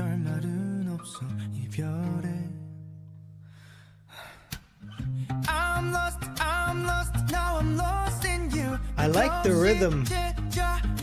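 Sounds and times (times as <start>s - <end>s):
acoustic guitar and bass ballad: 0.0s - 3.6s, 4.8s - 11.0s
quick breath in: 3.4s - 5.4s
person singing: 5.4s - 11.0s.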